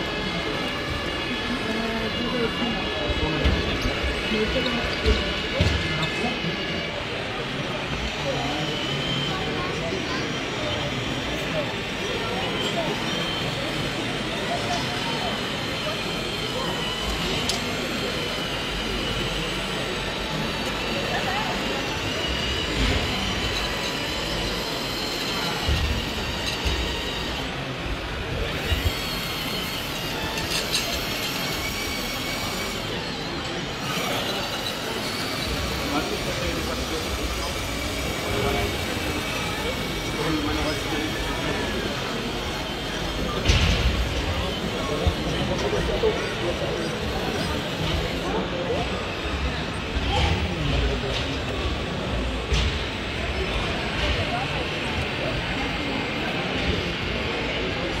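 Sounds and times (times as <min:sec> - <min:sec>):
model bulldozer running: 0:00.0 - 0:58.0.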